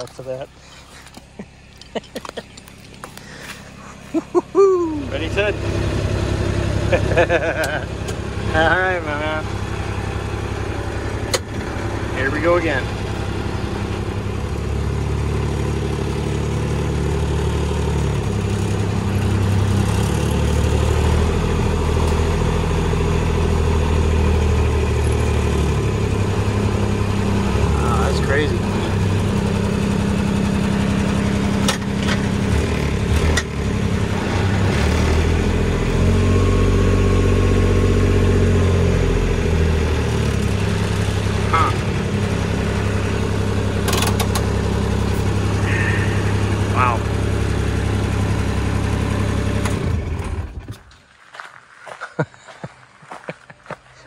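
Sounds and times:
utility vehicle engine under load: 0:00.0 - 0:51.1.

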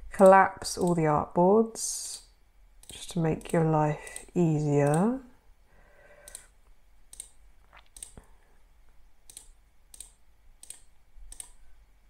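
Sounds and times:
faint mouse clicks: 0:06.2 - 0:06.5, 0:07.1 - 0:08.3, 0:09.3 - 0:11.6.

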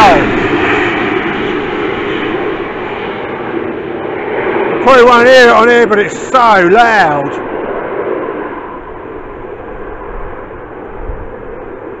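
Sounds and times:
jet engine roar: 0:00.0 - 0:12.0.

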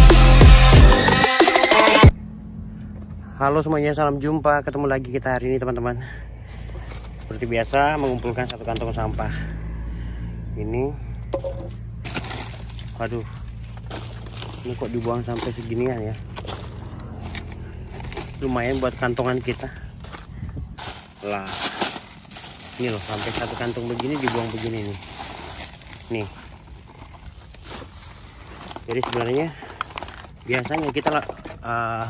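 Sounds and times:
steady low rumble: 0:02.1 - 0:28.9
plastic crinkling rustle: 0:12.1 - 0:19.8, 0:20.8 - 0:31.7.

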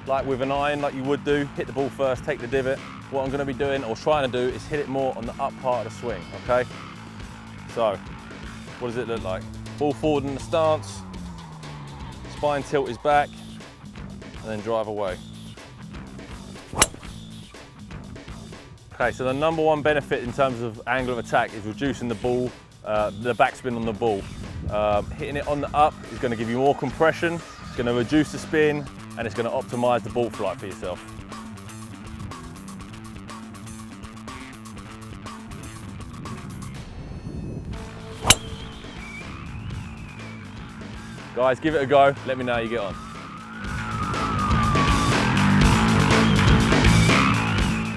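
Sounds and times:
background music: 0:00.0 - 0:47.9
golf driver striking ball: 0:16.7 - 0:17.4, 0:38.2 - 0:39.2.

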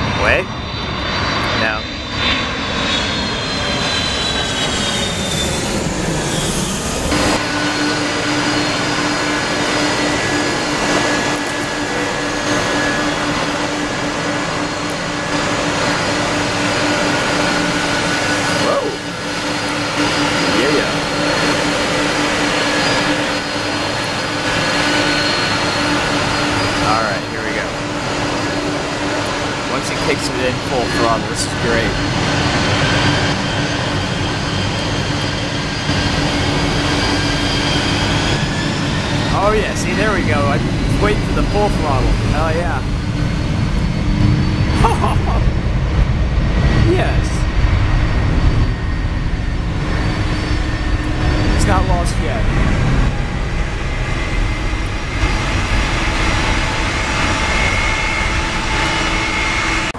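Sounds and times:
jet airliners rolling on wet runway: 0:00.0 - 0:59.9
jet engine whine: 0:00.0 - 0:59.9.

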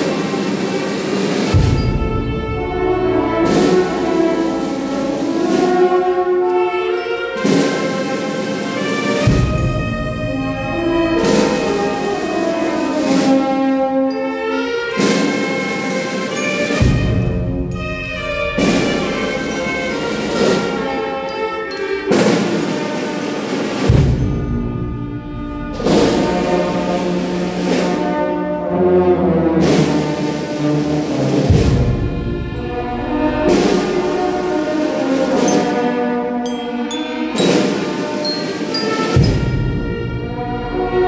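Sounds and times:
steady drum beat: 0:00.0 - 0:06.2, 0:07.4 - 0:13.6, 0:15.0 - 0:21.1, 0:21.8 - 0:28.3, 0:29.6 - 0:36.0, 0:37.3 - 0:41.0
brass band funeral march: 0:00.0 - 0:41.0.

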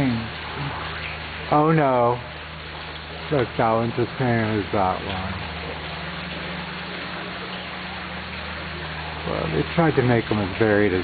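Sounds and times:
fountain water splashing: 0:00.0 - 0:11.0
low steady hum: 0:00.0 - 0:11.0.

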